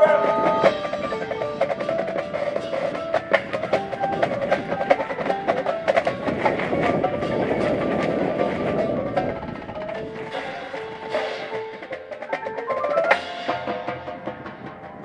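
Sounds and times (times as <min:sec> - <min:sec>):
marimbas playing: 0:00.0 - 0:15.0
snare and bass drum strikes: 0:00.0 - 0:15.0.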